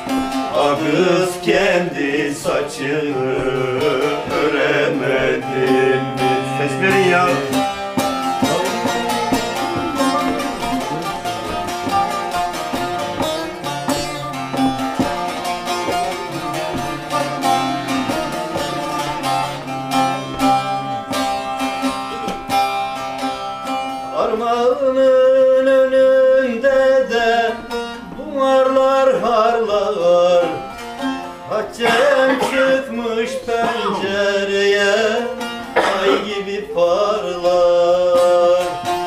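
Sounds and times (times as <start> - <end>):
man singing: 0.0 - 22.3, 24.0 - 39.0
plucked long-necked lute: 0.0 - 39.0.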